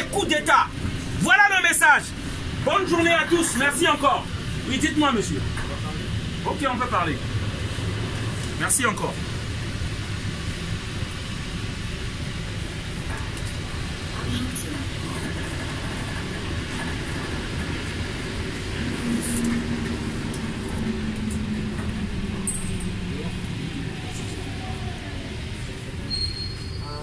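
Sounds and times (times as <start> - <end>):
metro train rumble: 0.0 - 27.0.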